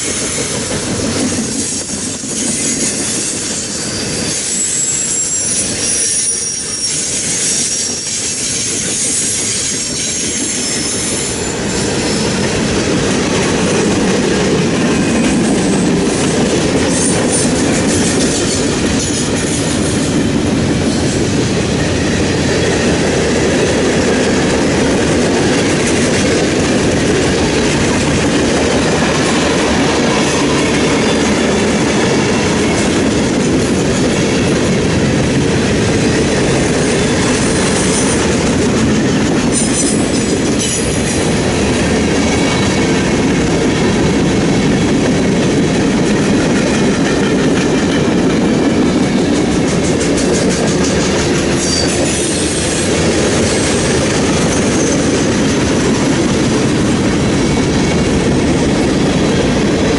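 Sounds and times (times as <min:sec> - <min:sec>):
steel wheels rumbling on rails: 0:00.0 - 0:59.9.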